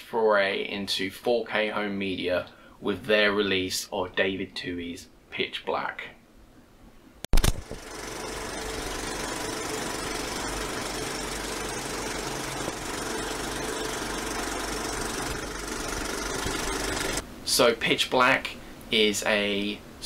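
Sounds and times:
low hum: 0:07.4 - 0:17.2.

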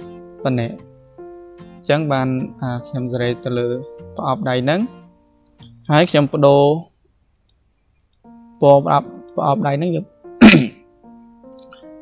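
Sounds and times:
person speaking: 0:00.4 - 0:00.9, 0:01.8 - 0:05.0, 0:05.6 - 0:07.0, 0:08.6 - 0:10.8.

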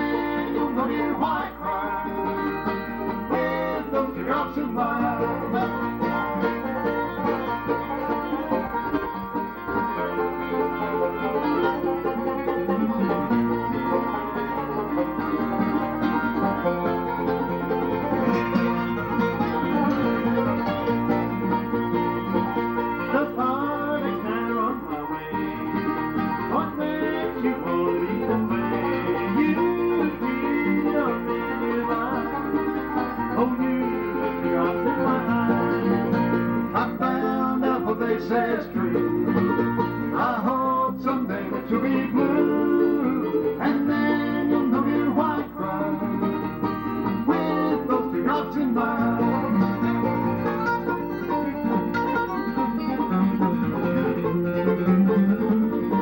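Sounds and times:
bluegrass banjo mandolin and guitar: 0:00.0 - 0:56.0.

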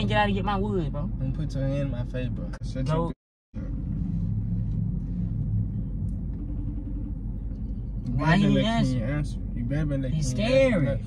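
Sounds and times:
car engine idling: 0:03.6 - 0:11.0.

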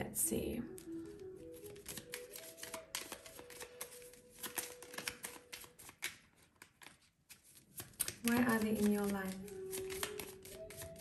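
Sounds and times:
cards being shuffled: 0:00.7 - 0:11.0.

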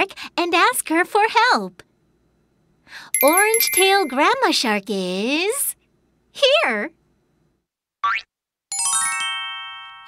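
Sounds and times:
ringing bell-like tones: 0:03.2 - 0:04.4.

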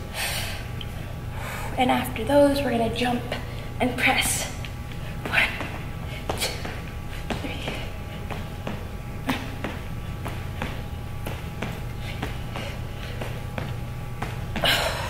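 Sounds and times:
steady low hum: 0:00.0 - 0:15.0
feet thudding on wooden floor: 0:05.2 - 0:15.0.

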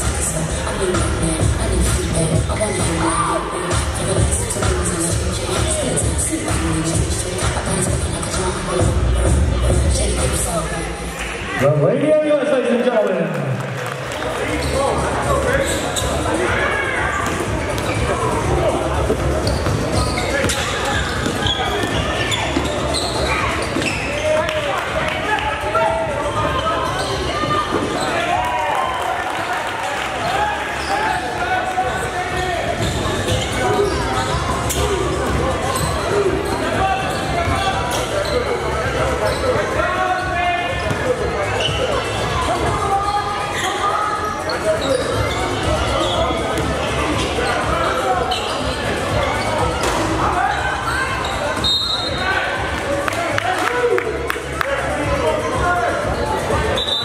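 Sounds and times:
voices echoing in hall: 0:00.0 - 0:57.0
sneakers squeaking on court: 0:14.4 - 0:24.9, 0:26.4 - 0:28.4, 0:30.7 - 0:31.3, 0:32.3 - 0:39.8, 0:40.7 - 0:42.3, 0:43.0 - 0:52.3.

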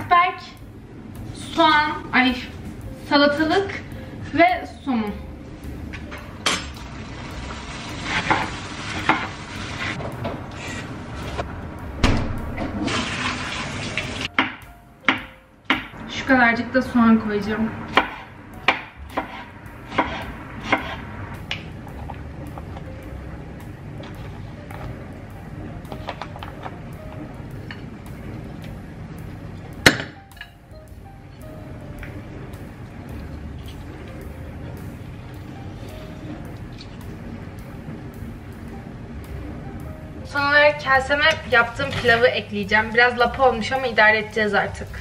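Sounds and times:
soft background music: 0:00.0 - 0:45.0
knife chopping on wooden board: 0:18.0 - 0:21.0.

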